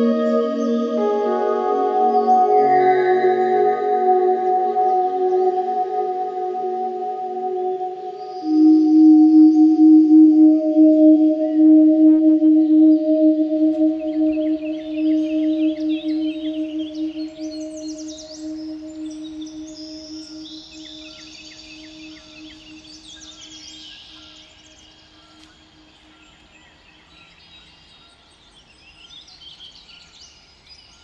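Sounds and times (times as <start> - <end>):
low humming tone: 0.0 - 23.3
birds chirping: 0.0 - 27.1.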